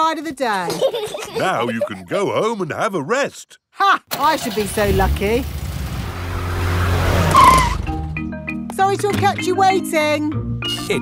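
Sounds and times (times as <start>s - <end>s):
cartoon car engine hum: 4.4s - 8.1s
tyre screech: 6.3s - 8.0s.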